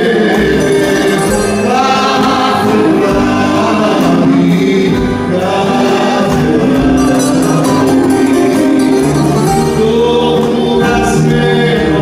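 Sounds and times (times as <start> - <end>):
band with acoustic guitar: 0.0 - 12.0
man singing into a microphone: 0.0 - 12.0.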